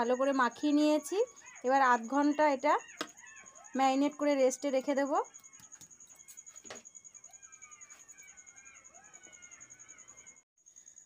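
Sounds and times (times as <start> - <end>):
faint gliding chirping calls: 0.0 - 11.0.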